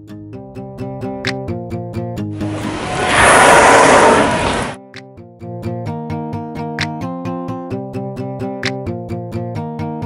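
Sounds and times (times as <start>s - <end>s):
killer whale blowhole exhale: 2.4s - 4.8s.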